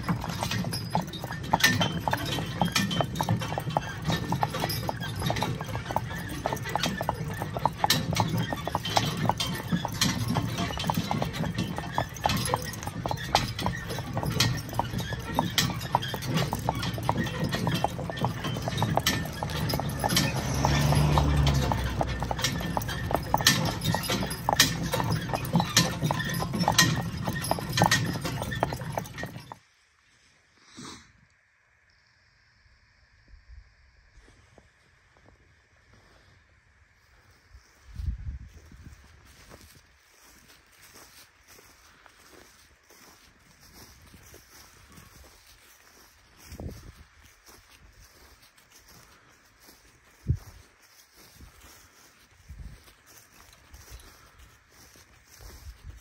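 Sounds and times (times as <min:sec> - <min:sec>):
horse hooves clip-clopping: 0:00.0 - 0:29.7, 0:37.6 - 0:56.0.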